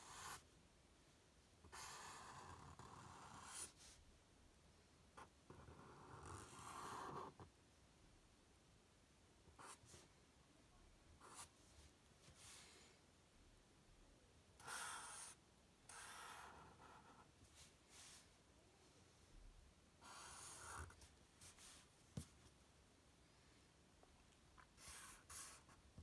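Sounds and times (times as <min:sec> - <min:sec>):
marker scratching on paper: 0:00.0 - 0:00.4, 0:01.7 - 0:04.0, 0:05.2 - 0:07.5, 0:09.6 - 0:10.0, 0:11.2 - 0:11.5, 0:14.6 - 0:18.2, 0:20.0 - 0:22.3, 0:24.6 - 0:26.0.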